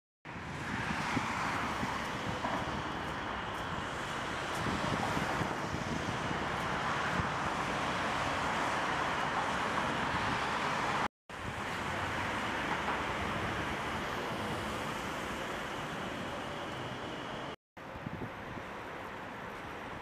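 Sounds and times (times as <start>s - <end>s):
wind rumble on microphone: 0.3s - 12.2s, 17.8s - 20.0s
city traffic hiss: 0.3s - 20.0s.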